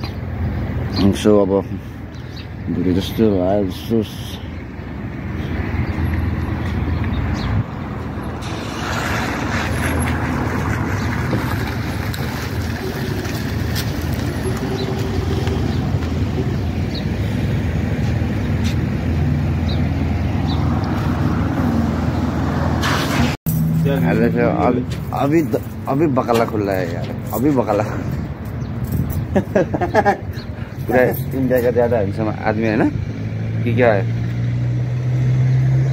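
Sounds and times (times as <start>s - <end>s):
low vehicle rumble: 4.4s - 35.9s.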